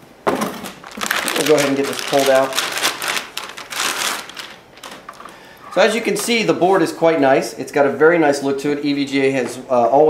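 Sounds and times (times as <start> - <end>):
plastic bag crinkling: 0.4 - 5.8.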